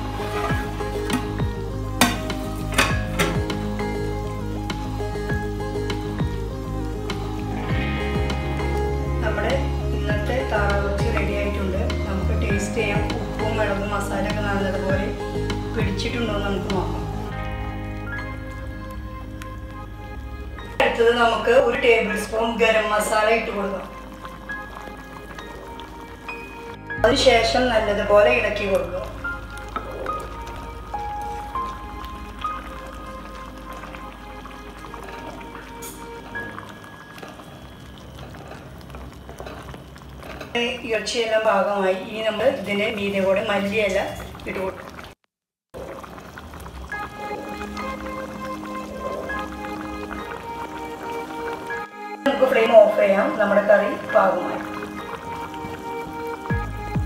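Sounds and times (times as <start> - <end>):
wooden spatula stirring: 0.0 - 2.9
background music: 0.0 - 43.5, 45.9 - 57.0
curry bubbling and sizzling in pot: 0.0 - 57.0.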